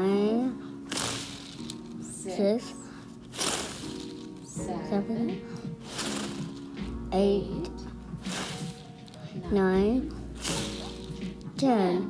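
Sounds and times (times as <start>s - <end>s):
steady music tones: 0.0s - 12.0s.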